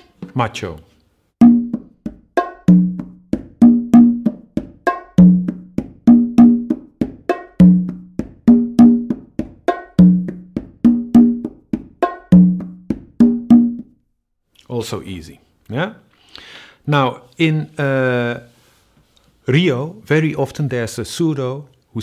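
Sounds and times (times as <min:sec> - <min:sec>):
deep open drum tone: 0:01.4 - 0:13.8
congas and bongo samba groove: 0:01.4 - 0:13.9.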